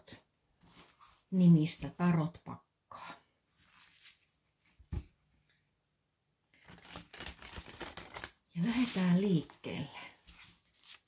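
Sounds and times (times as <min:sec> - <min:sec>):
cards shuffling: 0:06.6 - 0:09.1.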